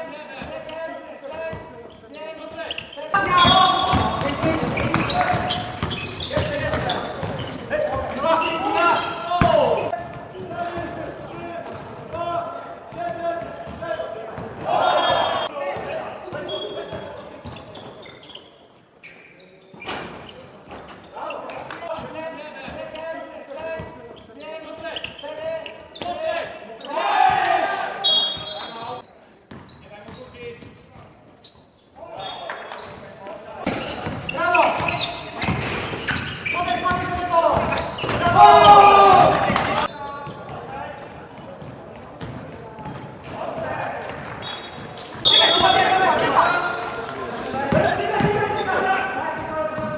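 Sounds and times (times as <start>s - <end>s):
basketball bouncing on court: 2.7s - 8.5s, 12.9s - 13.8s, 33.6s - 45.8s, 47.6s - 48.7s
players shouting: 3.1s - 10.0s, 14.6s - 15.5s, 26.2s - 28.7s, 36.4s - 39.9s, 45.2s - 49.9s.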